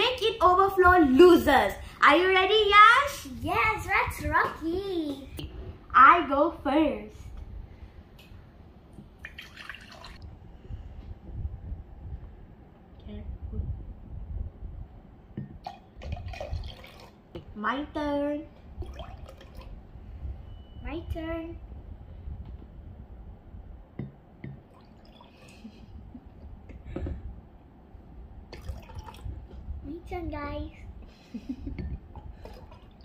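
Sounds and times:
water pouring into glass: 0:09.2 - 0:10.2, 0:15.6 - 0:17.2, 0:18.8 - 0:19.8, 0:24.7 - 0:25.6, 0:28.5 - 0:29.4.

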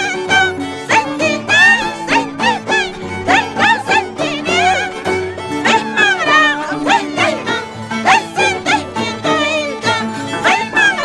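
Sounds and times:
woman singing high: 0:00.0 - 0:05.0, 0:05.6 - 0:11.0
harp and violin playing: 0:00.0 - 0:11.0.

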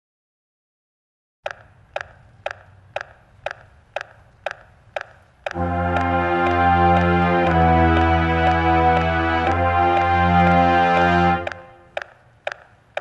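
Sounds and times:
metronome clicking: 0:01.5 - 0:13.0
brass horns sustained chord: 0:05.5 - 0:11.9.

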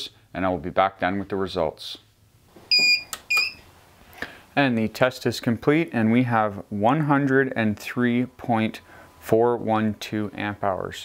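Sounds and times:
short high electronic beeps: 0:02.7 - 0:03.6.

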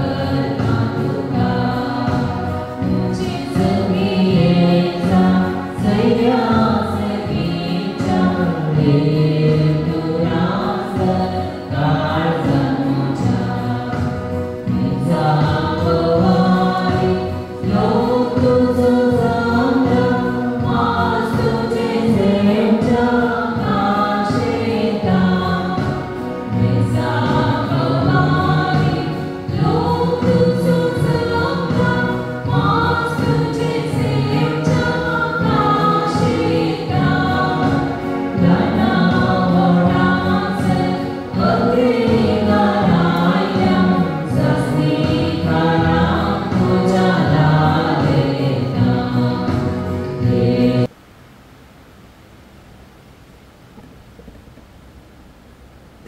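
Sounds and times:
choir singing a hymn: 0:00.0 - 0:50.9.

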